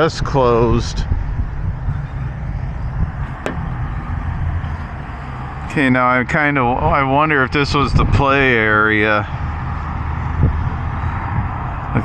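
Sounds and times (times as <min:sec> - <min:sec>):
road traffic rumble: 0:00.0 - 0:12.0
wind on microphone: 0:00.0 - 0:12.0.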